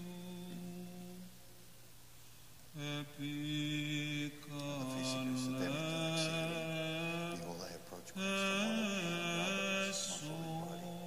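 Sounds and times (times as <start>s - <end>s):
man singing chant: 0.0s - 1.3s, 2.7s - 11.0s.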